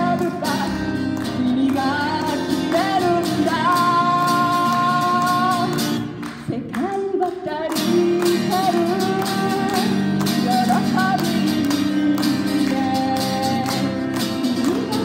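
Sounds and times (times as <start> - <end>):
guitar accompaniment: 0.0 - 15.0
woman singing pop song: 0.0 - 15.0.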